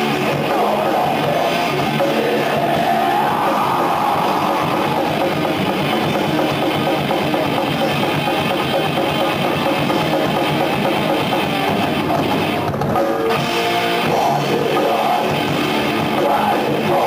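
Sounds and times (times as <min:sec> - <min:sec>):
distorted electric guitars: 0:00.0 - 0:17.0
fast dense drumming: 0:00.0 - 0:17.0.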